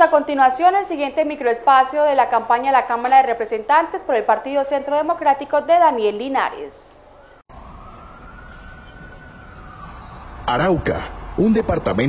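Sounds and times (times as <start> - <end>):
wailing tone: 7.5 - 10.9.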